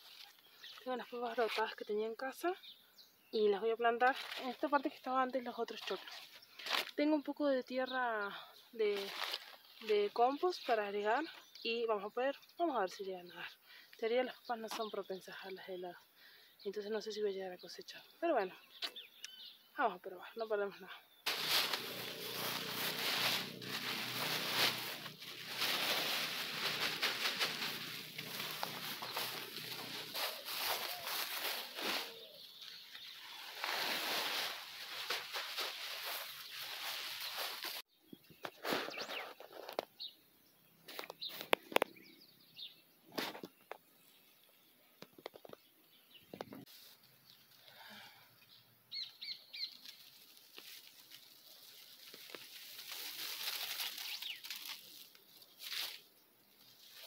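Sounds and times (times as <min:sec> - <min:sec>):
bird chirps: 0:17.7 - 0:20.4, 0:26.6 - 0:33.8, 0:35.8 - 0:47.4, 0:48.4 - 0:50.0, 0:54.0 - 0:54.5
plastic bag rustling: 0:21.3 - 0:37.8, 0:49.8 - 0:56.0.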